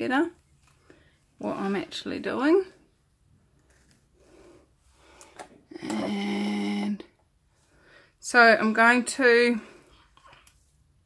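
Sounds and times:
soft breath: 0:07.5 - 0:08.2.

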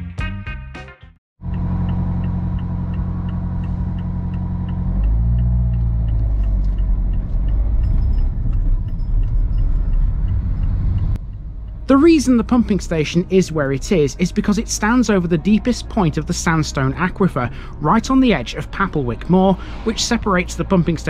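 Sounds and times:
car engine idling and accelerating: 0:01.4 - 0:21.0
light regular ticking: 0:01.4 - 0:21.0
road rumble: 0:01.4 - 0:21.0.

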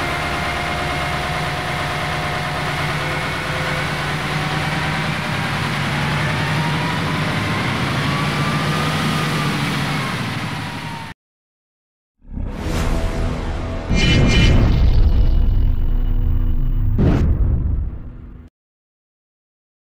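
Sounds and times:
truck engine idling: 0:00.0 - 0:06.4.

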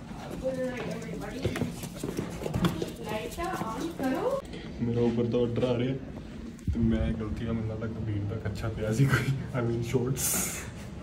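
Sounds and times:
people talking: 0:00.4 - 0:01.8, 0:02.6 - 0:05.9.

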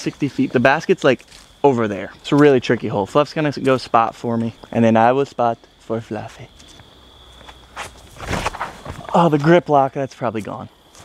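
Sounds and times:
footsteps on pavement: 0:00.0 - 0:04.8, 0:05.6 - 0:09.6.

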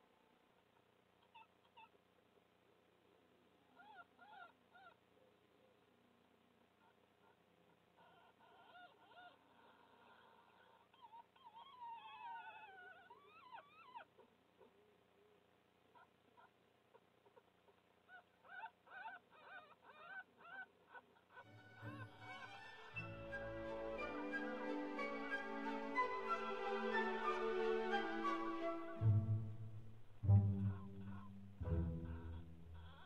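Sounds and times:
fox cubs squeaking: 0:08.0 - 0:14.2, 0:18.1 - 0:29.0, 0:30.7 - 0:33.0
music: 0:21.5 - 0:33.0.

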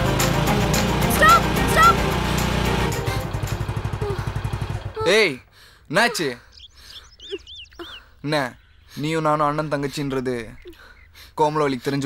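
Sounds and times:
motorcycle engine idling: 0:00.0 - 0:05.6.

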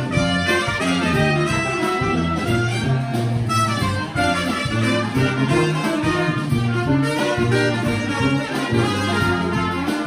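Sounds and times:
brass band playing: 0:00.0 - 0:10.0.

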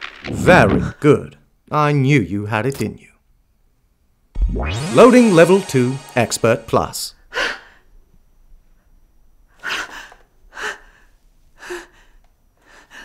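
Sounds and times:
woman breathing heavily: 0:07.3 - 0:07.9, 0:09.5 - 0:13.0.

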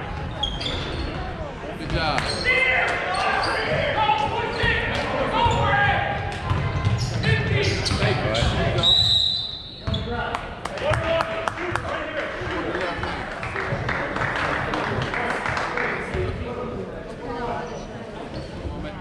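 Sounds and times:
basketball bouncing on court: 0:05.4 - 0:08.7.

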